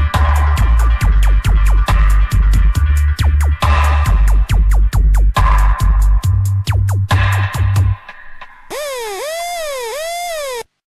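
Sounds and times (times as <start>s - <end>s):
dub siren synth effect: 8.7s - 10.6s.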